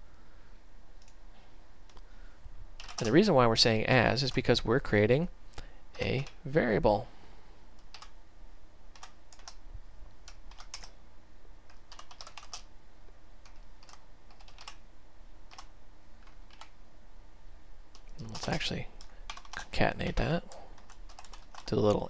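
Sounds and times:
keyboard typing: 2.8s - 3.2s, 7.8s - 8.2s, 8.9s - 9.6s, 10.2s - 11.0s, 11.7s - 12.7s, 13.4s - 14.8s, 15.5s - 16.8s, 17.9s - 19.7s, 20.5s - 21.9s.

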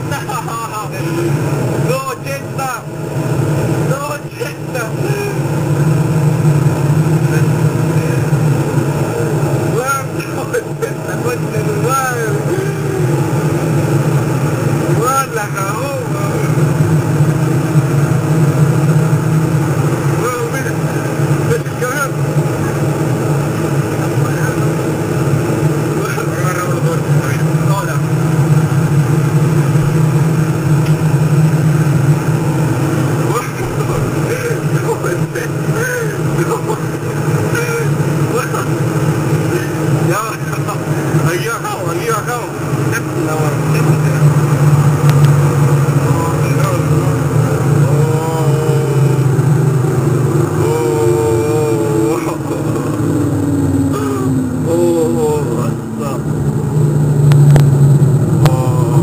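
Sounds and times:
people talking: 0.0s - 2.9s, 3.8s - 5.5s, 7.2s - 8.4s, 9.7s - 13.4s, 14.9s - 16.7s, 20.1s - 22.9s, 23.9s - 24.7s, 25.9s - 28.1s, 33.2s - 38.8s, 39.4s - 44.5s, 46.0s - 49.4s, 50.6s - 56.3s, 58.4s - 59.0s
vehicle engine drone: 0.0s - 59.0s.

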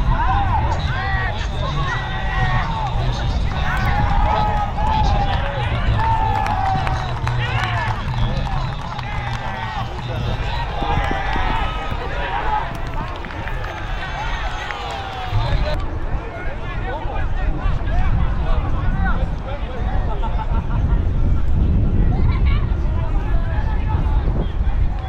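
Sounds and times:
players shouting: 0.0s - 15.8s
wind on microphone: 0.0s - 25.0s.

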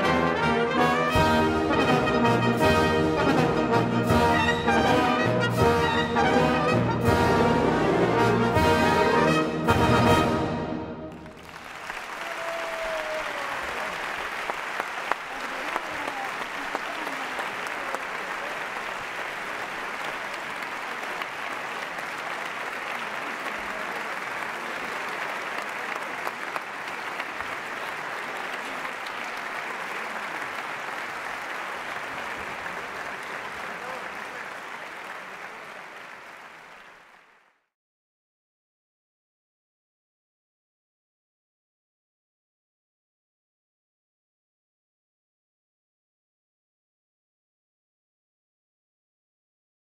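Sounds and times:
large audience applauding: 11.1s - 37.7s.

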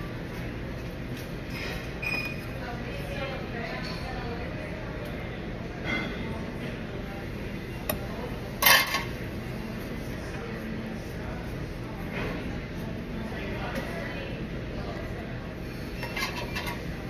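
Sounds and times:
low background voices: 0.0s - 17.0s.

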